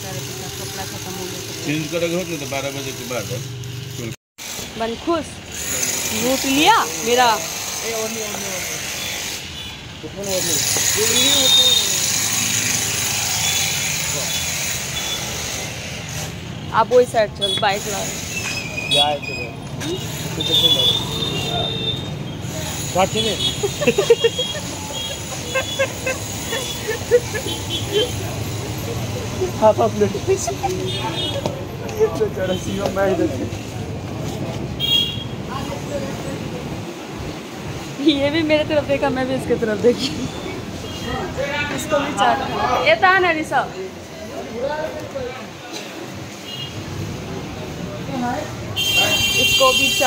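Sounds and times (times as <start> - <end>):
traffic noise: 0.0 - 50.0.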